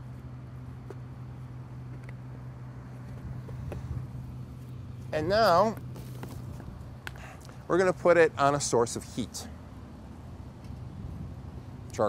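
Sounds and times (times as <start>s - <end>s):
low hum: 0.0s - 11.9s.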